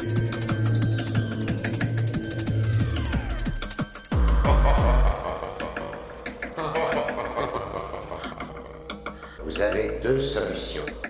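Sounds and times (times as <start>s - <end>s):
sharp electronic ticks and clicks: 0.0s - 4.5s, 5.6s - 7.2s, 10.2s - 11.0s
synth texture: 0.0s - 9.4s.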